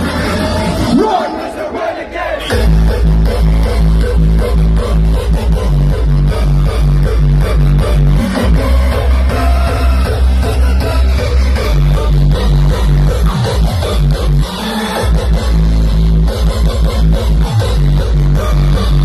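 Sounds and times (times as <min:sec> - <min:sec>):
hardstyle music over sound system: 0:00.0 - 0:01.7, 0:02.4 - 0:19.0
heavy kick drum and bass: 0:02.5 - 0:19.0.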